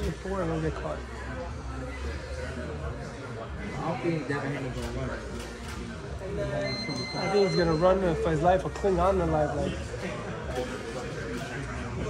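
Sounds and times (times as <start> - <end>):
background chatter: 0.0 - 12.0
men talking: 0.0 - 12.0.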